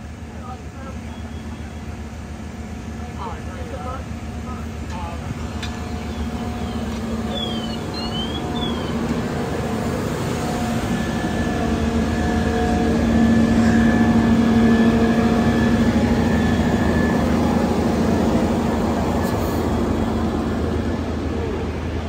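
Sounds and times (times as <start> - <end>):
diesel engine humming: 0.0 - 22.0.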